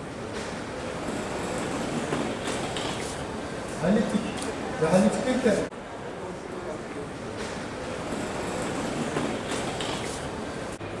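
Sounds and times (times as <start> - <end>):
train rumbling and clattering: 1.0 - 3.0, 8.5 - 10.0.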